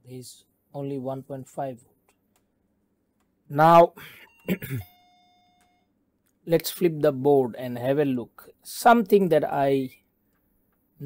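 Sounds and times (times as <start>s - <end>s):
faint chime: 3.8s - 6.0s
man coughing: 4.0s - 4.9s.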